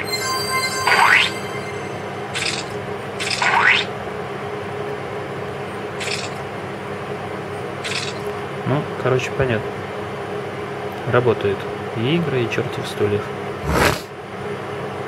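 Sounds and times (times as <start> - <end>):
rising whistle-like sweeps: 0.0 - 2.9.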